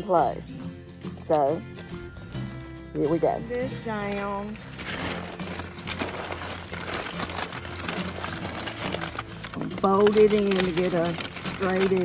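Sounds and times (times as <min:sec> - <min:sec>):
packing paper crinkling: 0:03.6 - 0:12.0.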